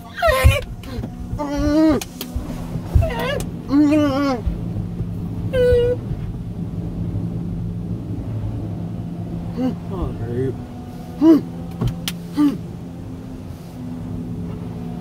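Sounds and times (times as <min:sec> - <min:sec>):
car wash low hum: 0:00.0 - 0:15.0
water sheeting over windshield: 0:00.0 - 0:15.0.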